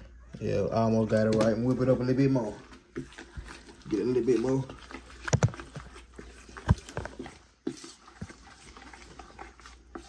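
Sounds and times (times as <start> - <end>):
spatula stirring wet mush: 0.0 - 10.0.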